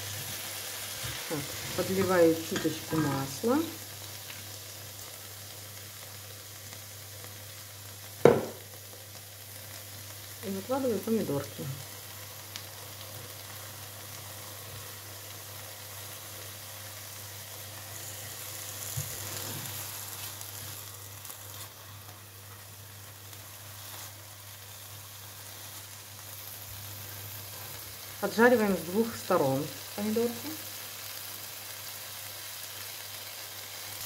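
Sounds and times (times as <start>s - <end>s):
vegetables sizzling in oil: 0.0s - 34.0s.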